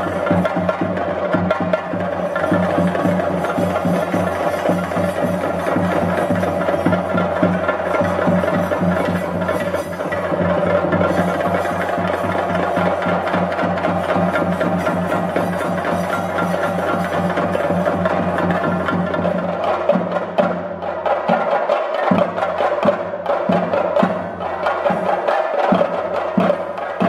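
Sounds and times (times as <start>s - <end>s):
fast drum roll: 0.0s - 27.0s.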